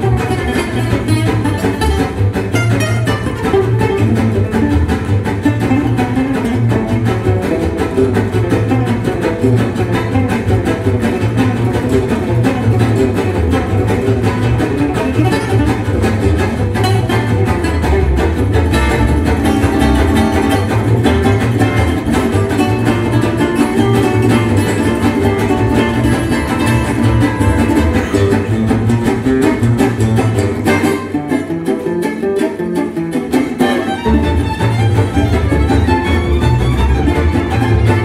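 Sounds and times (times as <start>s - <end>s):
acoustic guitar solo: 0.0s - 38.0s
plucked double bass: 0.0s - 38.0s
strummed rhythm guitar: 0.0s - 38.0s.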